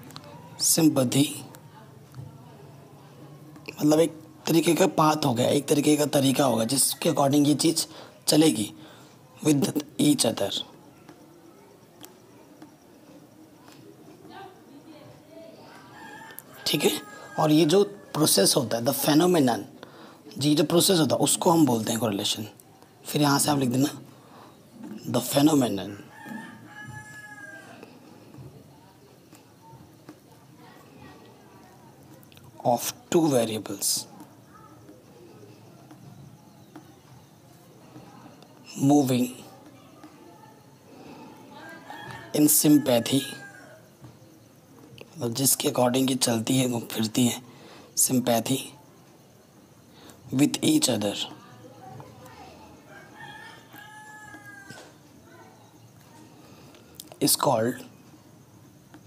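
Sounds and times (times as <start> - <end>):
rooster crowing: 15.7 - 18.6, 25.8 - 28.5, 40.0 - 44.5, 52.8 - 55.9.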